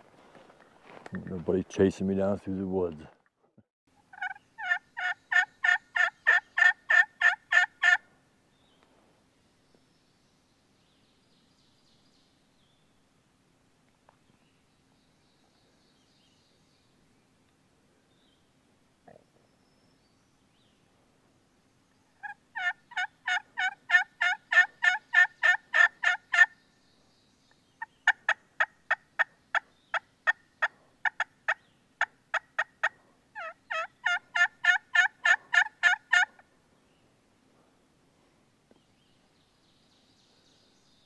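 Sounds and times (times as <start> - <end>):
turkey call yelps: 4.1 - 8.0, 22.2 - 26.5, 32.0 - 36.4.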